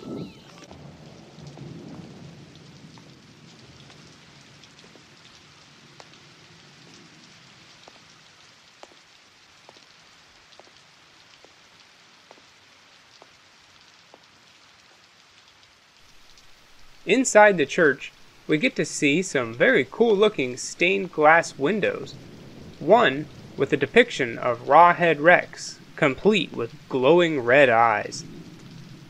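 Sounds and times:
rain hiss: 0.0s - 29.0s.

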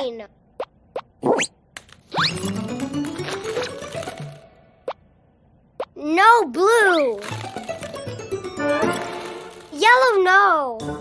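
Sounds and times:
cartoon plop sound effects: 0.6s - 1.5s
background music: 2.1s - 4.8s, 7.2s - 9.8s, 10.7s - 11.0s.

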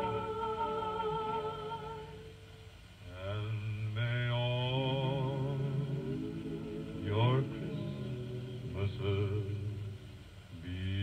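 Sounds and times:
recorded song with vibrato singing: 0.0s - 11.0s.

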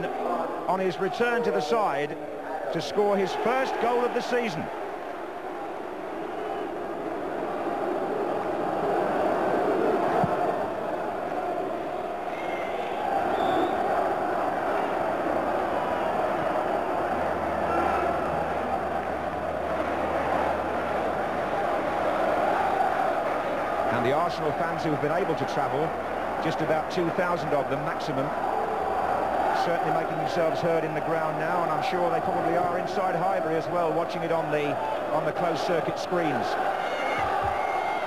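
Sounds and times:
crowd voices: 0.0s - 38.0s.

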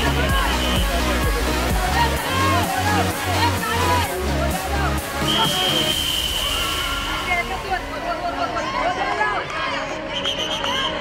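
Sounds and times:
whistle long blast: 5.2s - 7.2s.

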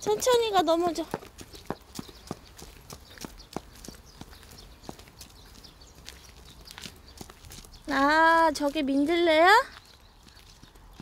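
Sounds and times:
footsteps on a road: 0.0s - 11.0s.

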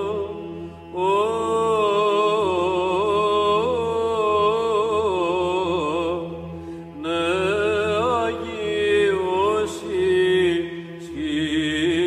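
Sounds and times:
slow vocal chant: 0.0s - 12.0s.

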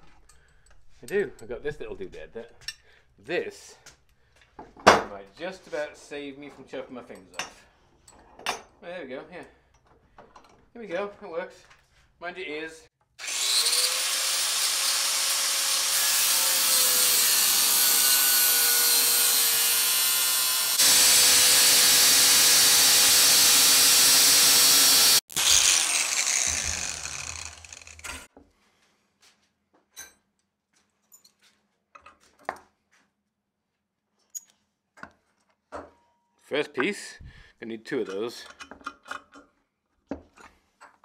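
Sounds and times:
angle grinder cutting steel: 13.2s - 28.3s
grinder winding down whine: 13.2s - 28.3s
clicks and knocks of metal: 38.1s - 39.5s.

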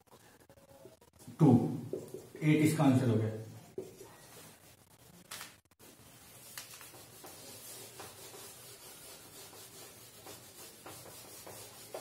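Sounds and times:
eraser rubbing on whiteboard: 5.8s - 12.0s.

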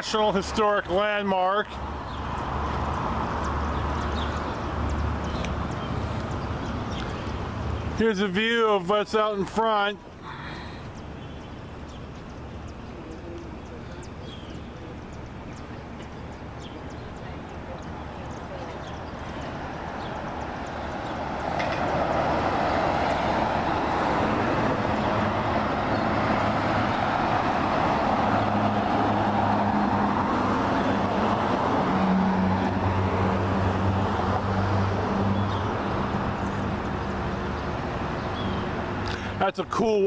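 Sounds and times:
vehicle engine hum: 0.0s - 39.7s
road traffic: 0.0s - 40.0s.

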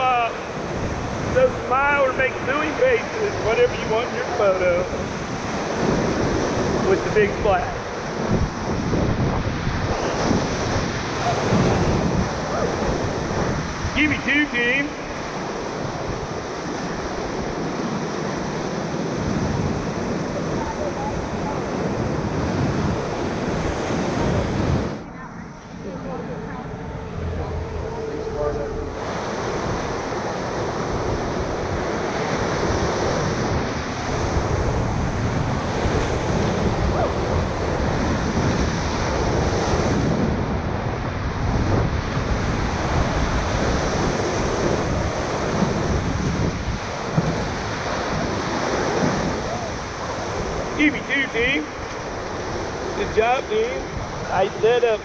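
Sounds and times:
whitewater rapids rushing: 0.0s - 25.0s, 27.1s - 40.7s, 41.7s - 55.0s
wind buffeting microphone: 0.0s - 55.0s.

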